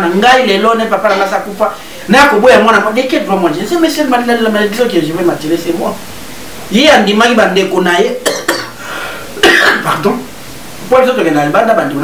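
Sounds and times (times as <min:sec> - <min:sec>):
man speaking: 0:00.0 - 0:06.1, 0:06.7 - 0:08.4, 0:09.4 - 0:12.0
short cough: 0:09.4 - 0:10.0.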